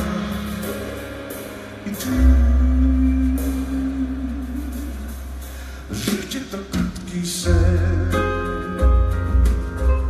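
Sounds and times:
jazz band playing ballad: 0.0 - 10.0.

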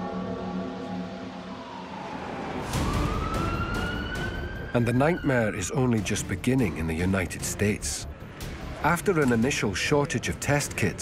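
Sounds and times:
music drone: 0.0 - 5.6
emergency siren wailing: 0.0 - 6.0.

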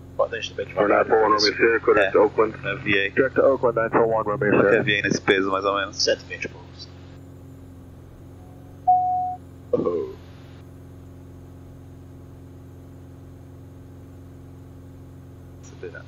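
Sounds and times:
aircraft engine and propeller drone: 0.0 - 10.1
loud electronic beep: 8.3 - 9.4.

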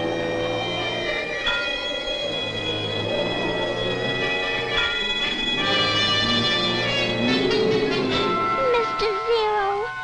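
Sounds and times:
orchestral cartoon music: 0.0 - 10.0.

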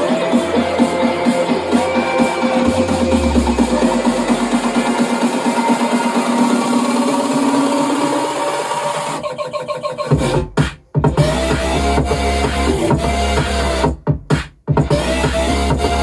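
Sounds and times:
deep bass: 0.0 - 8.0, 10.1 - 16.0
electronic house music: 0.0 - 16.0.

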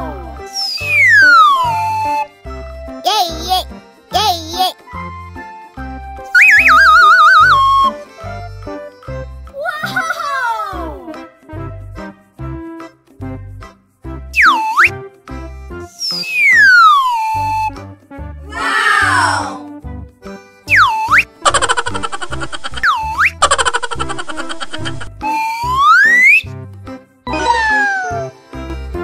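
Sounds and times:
children's background music: 0.0 - 29.0
swooping whistle-like tones: 0.5 - 2.4, 6.3 - 8.0, 14.4 - 15.0, 16.0 - 17.8, 20.7 - 21.7, 22.8 - 23.4, 25.2 - 26.5.

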